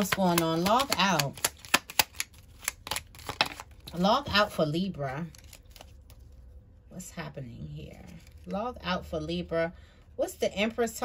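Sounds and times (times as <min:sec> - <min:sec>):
cards being shuffled: 0:00.0 - 0:06.4, 0:08.0 - 0:08.5.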